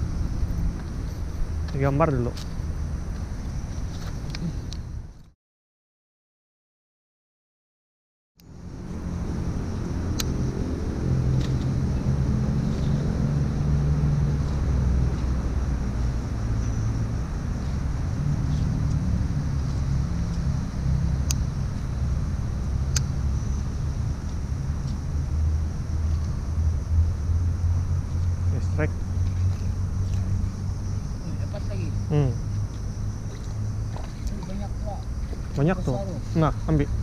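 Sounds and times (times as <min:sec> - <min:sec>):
low engine rumble: 0:00.0 - 0:05.3, 0:08.4 - 0:37.0.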